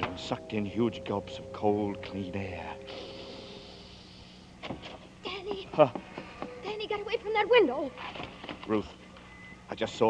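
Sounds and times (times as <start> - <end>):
old radio recording hum: 0.0 - 10.0.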